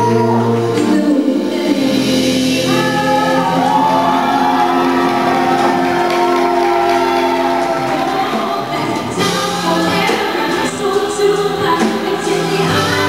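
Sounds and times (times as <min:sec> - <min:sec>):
bass guitar: 0:00.0 - 0:13.0
drums: 0:00.0 - 0:13.0
man and woman singing duet: 0:00.0 - 0:13.0.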